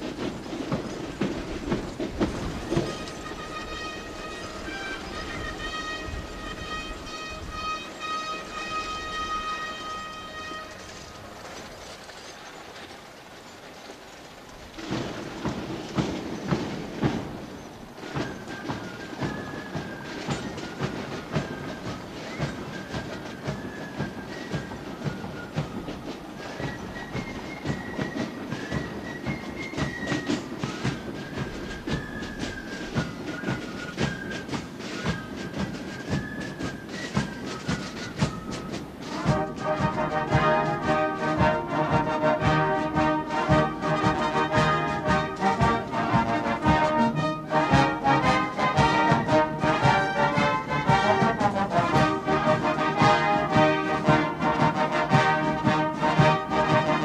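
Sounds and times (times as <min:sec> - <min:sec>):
military band brass chords: 0:00.0 - 0:11.6, 0:14.8 - 0:57.0
marching drums: 0:00.0 - 0:57.0.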